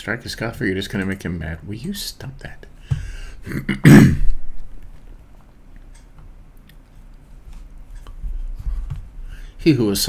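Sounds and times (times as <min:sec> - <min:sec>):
man clearing throat: 0:03.4 - 0:04.4.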